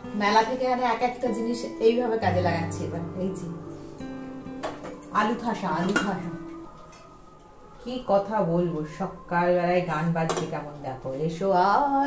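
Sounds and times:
metal pots clattering: 5.7s - 7.1s.

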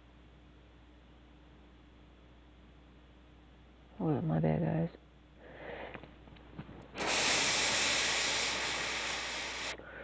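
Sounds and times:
rushing hiss of air: 7.0s - 9.8s.

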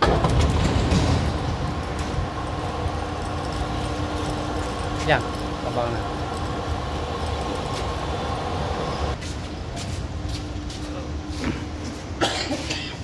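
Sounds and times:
electric gear motor humming: 0.4s - 9.2s.

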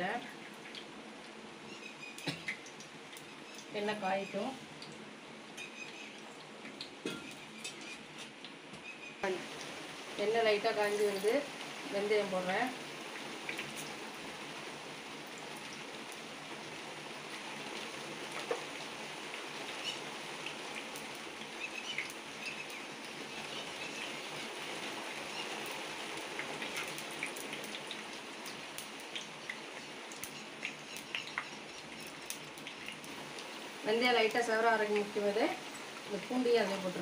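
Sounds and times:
seeds sizzling in hot oil: 0.0s - 37.0s
small pops and crackles: 0.3s - 1.4s, 5.6s - 8.8s, 13.1s - 14.0s, 18.3s - 18.8s, 25.5s - 33.5s.

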